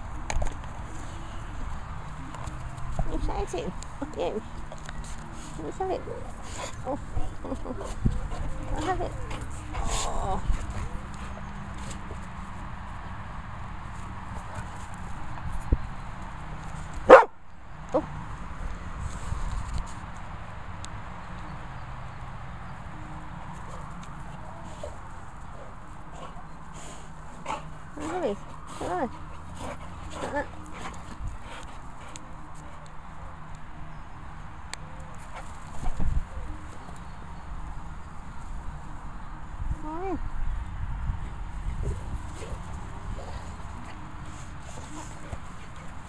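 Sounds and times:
wind rumble on microphone: 0:35.8 - 0:36.6, 0:38.7 - 0:44.3.

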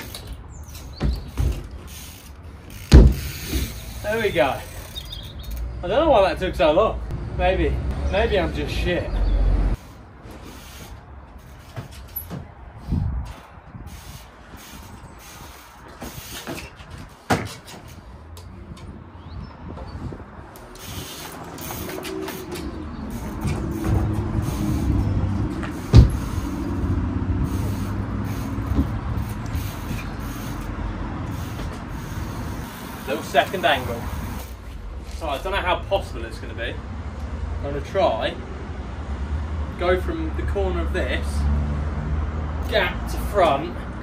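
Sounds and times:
road traffic drone: 0:00.0 - 0:44.0
bike knocking on wooden pallets: 0:00.8 - 0:02.0, 0:02.7 - 0:03.7, 0:15.9 - 0:18.0, 0:25.4 - 0:26.3, 0:28.6 - 0:29.2.

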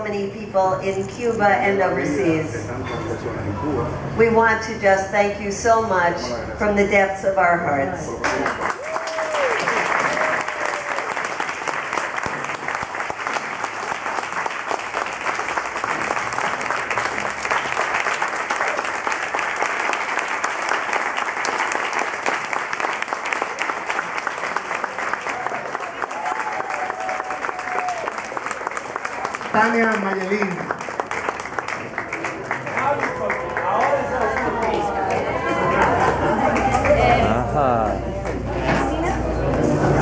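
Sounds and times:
audience applauding: 0:08.2 - 0:38.4.

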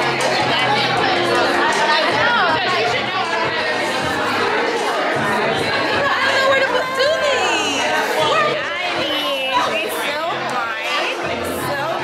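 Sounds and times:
music playing: 0:00.0 - 0:12.0
women chatting: 0:05.2 - 0:12.0.

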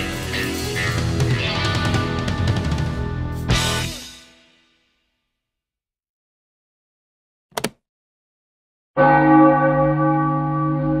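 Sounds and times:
large bell ringing: 0:09.0 - 0:11.0.

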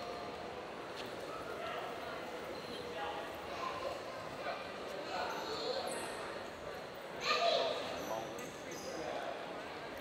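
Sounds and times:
people talking in echoing hall: 0:00.0 - 0:10.0.

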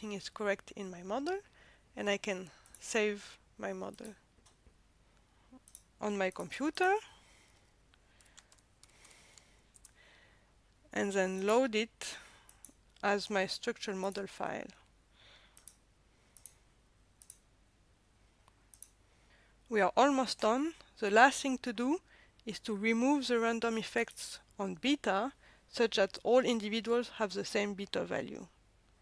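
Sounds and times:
computer mouse clicks: 0:05.6 - 0:06.5, 0:08.2 - 0:10.0, 0:12.5 - 0:13.0, 0:15.6 - 0:15.8, 0:16.4 - 0:16.6, 0:17.2 - 0:17.4, 0:18.5 - 0:19.0
faint computer mouse clicks: 0:15.6 - 0:15.8, 0:16.4 - 0:16.6, 0:17.2 - 0:17.4, 0:18.4 - 0:19.0.

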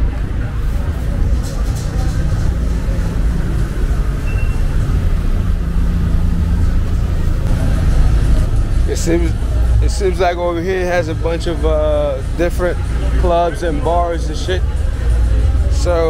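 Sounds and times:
car engines passing: 0:00.0 - 0:16.0
indistinct voices: 0:00.0 - 0:16.0.

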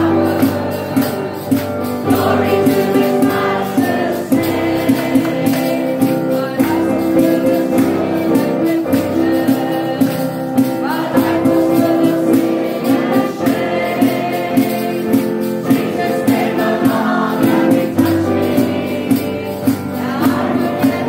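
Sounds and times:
group singing gospel chorus: 0:00.0 - 0:21.0
instrumental accompaniment: 0:00.0 - 0:21.0.

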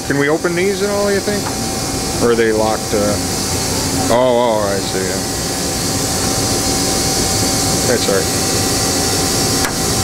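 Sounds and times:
machinery humming and hissing: 0:00.0 - 0:10.0.

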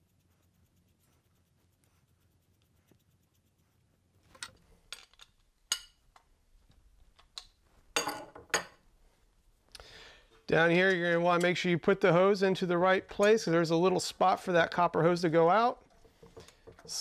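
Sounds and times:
metal parts clinking and knocking: 0:04.3 - 0:06.0.

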